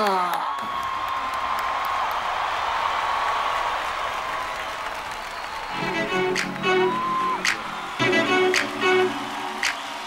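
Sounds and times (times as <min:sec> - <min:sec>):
audience applauding: 0:00.0 - 0:10.0
bowed strings music: 0:05.8 - 0:09.6.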